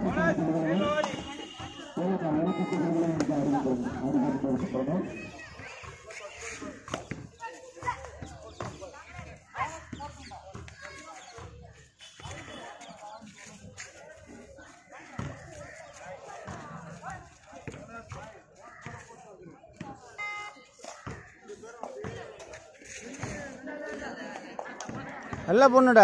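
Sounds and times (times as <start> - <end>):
voices calling out and chattering: 0.0 - 26.0.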